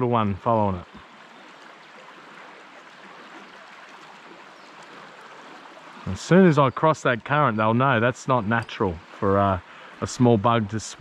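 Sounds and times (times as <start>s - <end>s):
creek water rushing over shallows: 0.0s - 11.0s.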